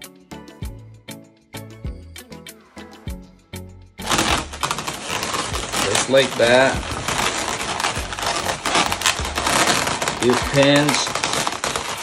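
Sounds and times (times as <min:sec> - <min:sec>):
balloons rubbing and squeaking: 0:04.0 - 0:12.0.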